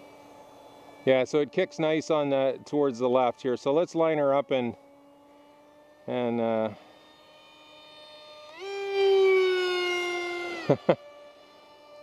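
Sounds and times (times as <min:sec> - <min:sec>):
electric motor whine: 0:00.0 - 0:12.0.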